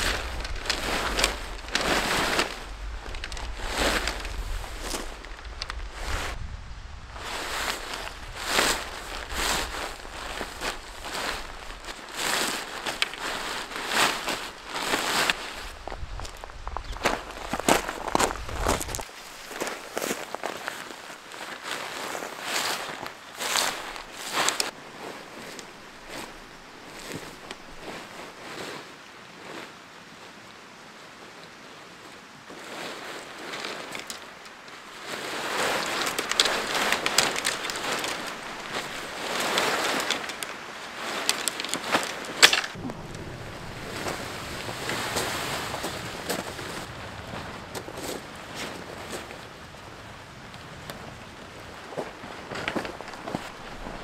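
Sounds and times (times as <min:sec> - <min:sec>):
tent pole clicking: 0:00.0 - 0:06.3, 0:07.2 - 0:28.1, 0:33.2 - 0:43.3
footsteps crunching on gravel: 0:00.0 - 0:06.5, 0:07.2 - 0:28.7, 0:32.5 - 0:49.5, 0:51.6 - 0:54.0
tent fabric rustling and crinkling: 0:00.0 - 0:54.0.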